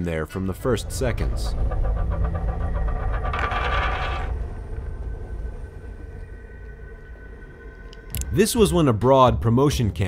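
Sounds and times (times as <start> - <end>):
low music drone: 0.0 - 10.0
metal spinning top whirring: 0.6 - 4.8.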